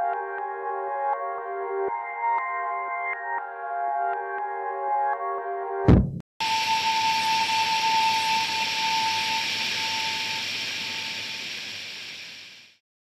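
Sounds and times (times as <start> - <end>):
brief thud: 5.9 - 6.2
steady hiss: 6.4 - 12.8.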